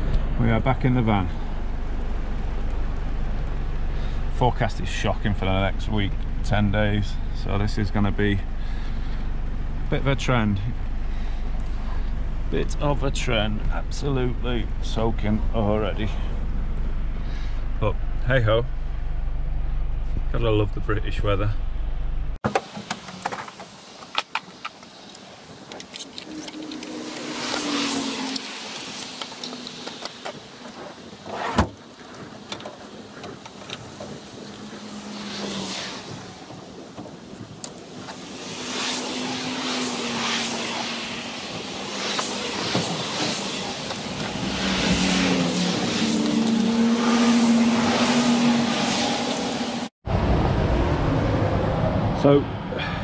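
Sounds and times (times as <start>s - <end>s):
tools and gear knocking and rattling: 31.6s - 34.3s.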